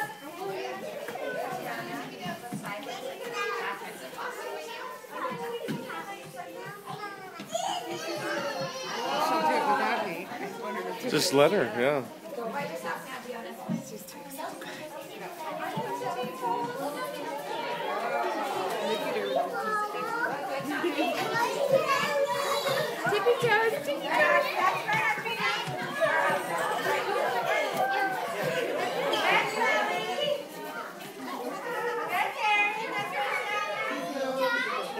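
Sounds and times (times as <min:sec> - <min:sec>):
children and adults chattering: 0:00.0 - 0:34.9.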